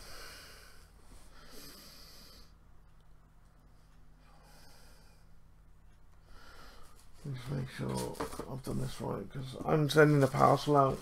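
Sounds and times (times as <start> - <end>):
man breathing: 0.0 - 2.6, 3.7 - 5.5, 6.2 - 7.2.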